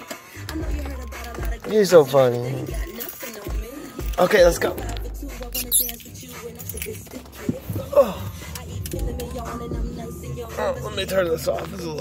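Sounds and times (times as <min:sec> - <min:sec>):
high-pitched squeak: 0:05.5 - 0:06.2
road and engine rumble in car: 0:06.1 - 0:12.0.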